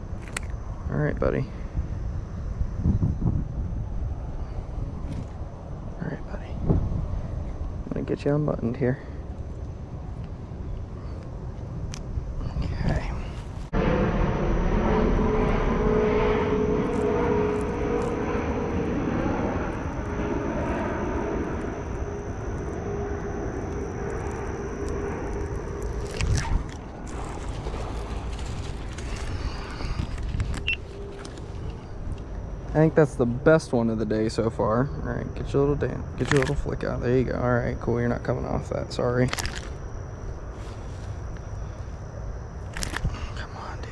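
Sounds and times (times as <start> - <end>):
engine drone: 0.0 - 43.9
held note sagging in pitch: 13.7 - 39.1.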